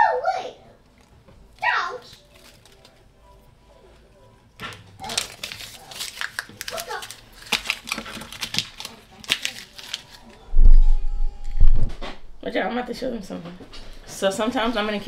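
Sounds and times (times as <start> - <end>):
paper crinkling: 1.0 - 3.5, 4.6 - 10.4
paper wrapper tearing: 1.6 - 3.1, 5.0 - 10.4.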